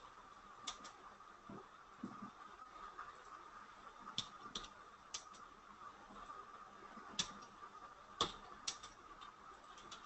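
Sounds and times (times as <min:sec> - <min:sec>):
faint steady hum: 0:00.0 - 0:10.0
computer keyboard and mouse clicks: 0:00.7 - 0:01.0, 0:04.2 - 0:05.5, 0:07.1 - 0:07.5, 0:08.2 - 0:10.0.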